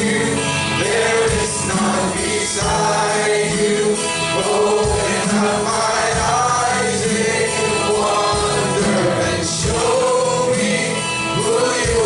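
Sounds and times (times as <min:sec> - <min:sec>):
acoustic guitar: 0:00.0 - 0:12.0
drums: 0:00.0 - 0:12.0
voices singing together: 0:00.0 - 0:12.0.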